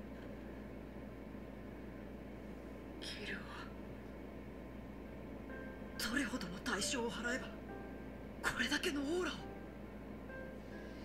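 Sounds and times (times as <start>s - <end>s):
low steady hum: 0.0s - 11.0s
faint whispered voice: 3.0s - 3.8s.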